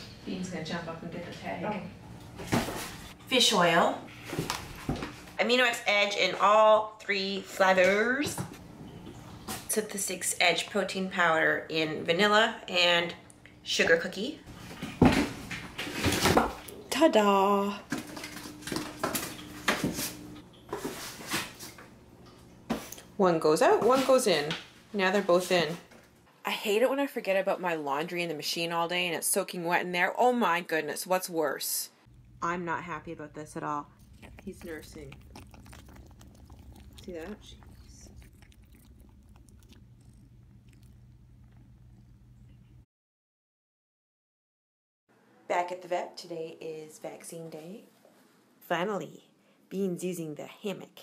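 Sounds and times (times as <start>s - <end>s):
cat purring: 33.4s - 42.8s.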